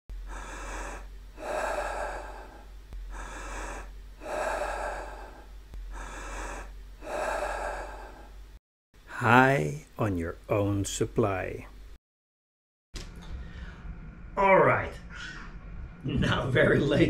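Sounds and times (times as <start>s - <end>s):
deep forceful breathing: 0.1s - 8.4s, 13.3s - 14.0s
steady low hum: 0.1s - 12.0s, 13.0s - 17.0s.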